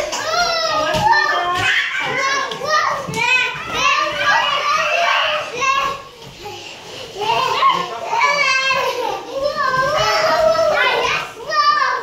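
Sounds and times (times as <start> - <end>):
children shouting and squealing: 0.0 - 12.0.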